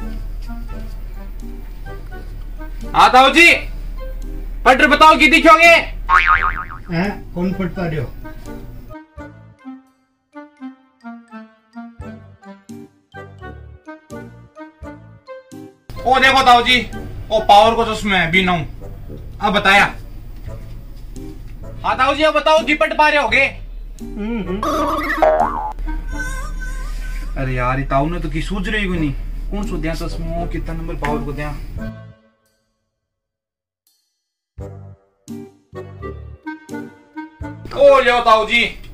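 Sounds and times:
wobbling comedy tone: 6.1 - 7.1, 24.6 - 25.8.

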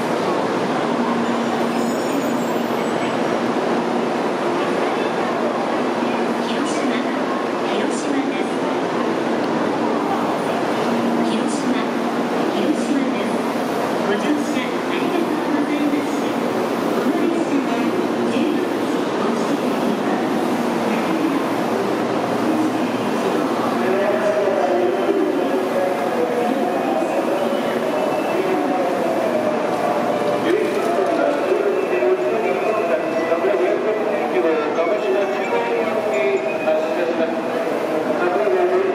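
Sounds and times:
crowd murmur: 0.0 - 38.9
train humming at platform: 0.0 - 38.9.

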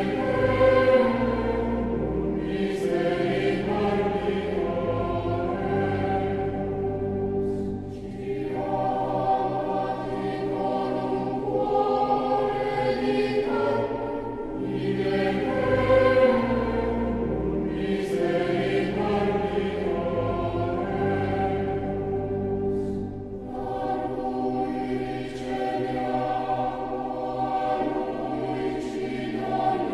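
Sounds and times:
choir singing held chords: 0.0 - 29.9.

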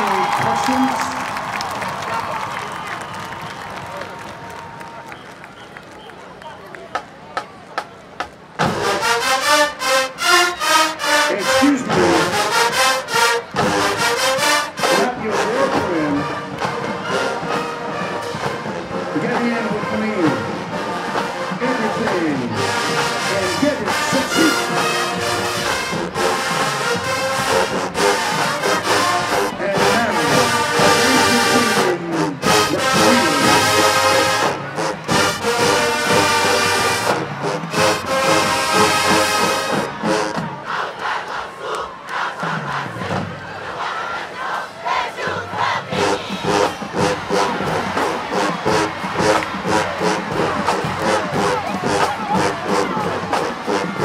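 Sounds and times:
marching band brass: 0.0 - 54.0
stadium crowd cheering: 0.0 - 54.0
marching band drums: 5.2 - 41.2, 42.2 - 54.0.

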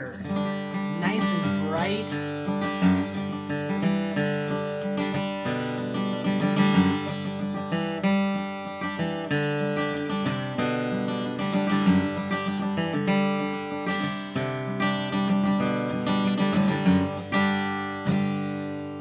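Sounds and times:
acoustic guitar flatpicking: 0.0 - 19.0.

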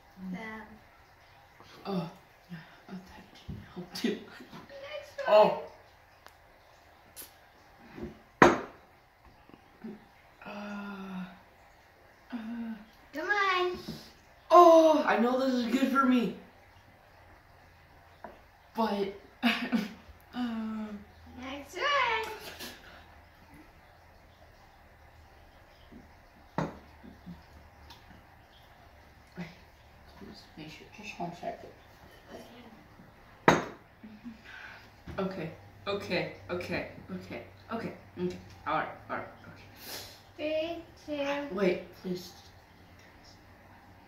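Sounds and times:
plastic cup knocking on counter: 33.4 - 33.8.

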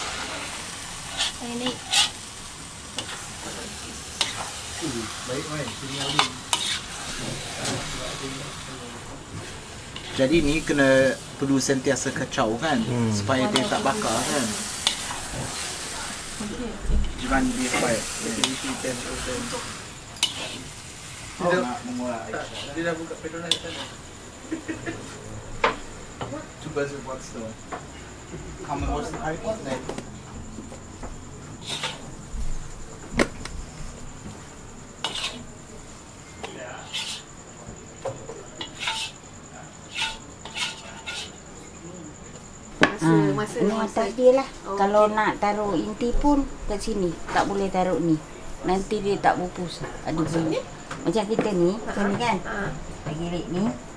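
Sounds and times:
food sizzling in a wok: 0.0 - 27.2, 30.7 - 41.6
metal spatula scraping pots: 1.0 - 2.3, 5.5 - 7.9, 17.2 - 20.8, 21.5 - 24.0, 31.6 - 32.1, 35.0 - 35.6, 36.8 - 37.3, 38.6 - 39.2, 39.8 - 41.4.

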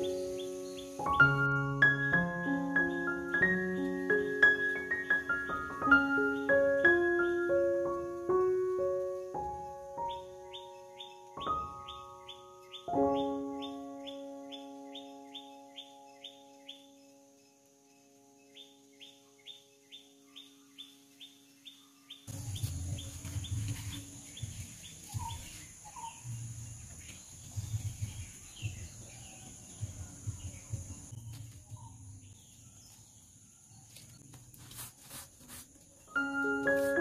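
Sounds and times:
soft piano notes: 0.0 - 19.6, 36.1 - 37.0
bird chirping: 0.0 - 34.3.

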